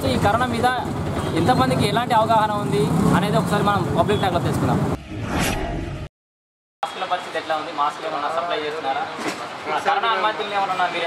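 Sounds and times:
street traffic noise: 0.0s - 5.0s, 6.8s - 11.0s.

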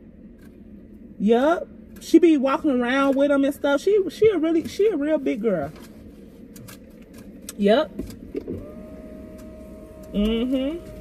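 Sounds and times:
power window motor whining: 8.1s - 11.0s.

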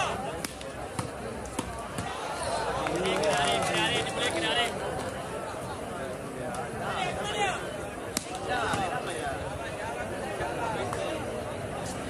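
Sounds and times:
crowd murmur: 0.0s - 12.0s
volleyball slaps: 0.4s - 2.2s.

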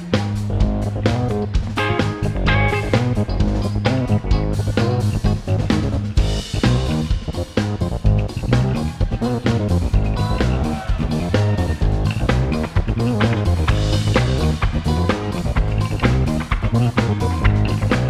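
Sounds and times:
live rock band playing: 0.0s - 18.0s
steady drum beat: 0.0s - 18.0s.

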